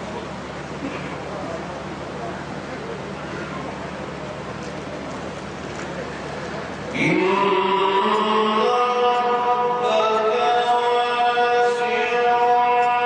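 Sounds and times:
man chanting melodically: 6.9s - 13.0s.

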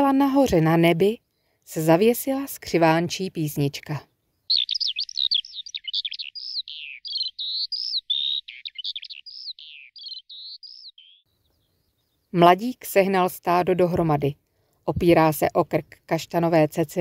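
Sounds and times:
skylark singing: 2.0s - 13.8s.

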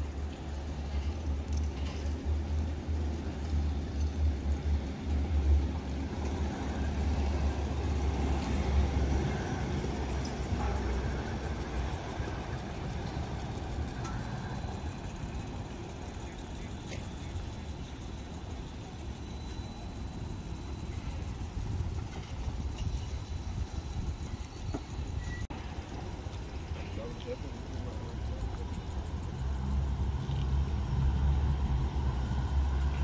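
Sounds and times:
steady traffic noise: 0.0s - 33.0s
tram running past: 0.0s - 33.0s.

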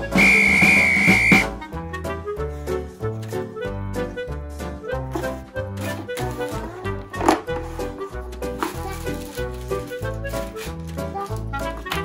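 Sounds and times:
high steady whistle: 0.0s - 1.5s
upbeat children's music: 0.0s - 12.0s.

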